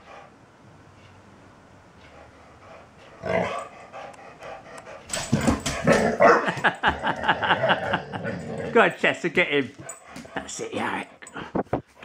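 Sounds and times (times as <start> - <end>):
young dog barking and growling: 5.0 - 8.8.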